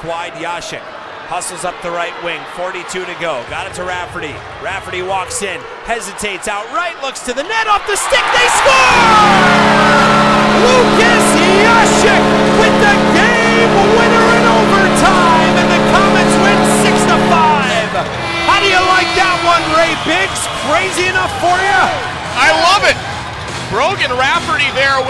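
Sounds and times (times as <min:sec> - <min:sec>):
crowd cheering and shouting: 0:00.0 - 0:25.0
arena goal horn: 0:08.4 - 0:23.0.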